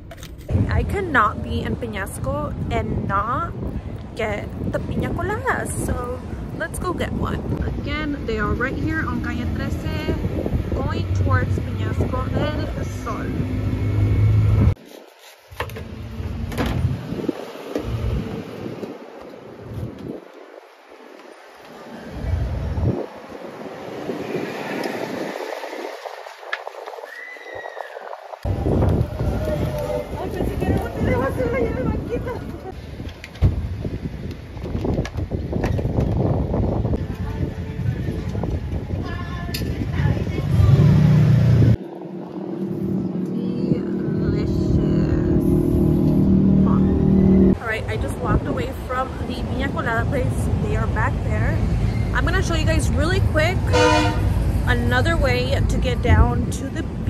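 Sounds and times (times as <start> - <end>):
wind buffeting microphone: 0.0 - 14.8, 15.8 - 57.0
outdoor background noise: 0.0 - 57.0
loud low rumble: 28.4 - 32.6, 36.5 - 57.0.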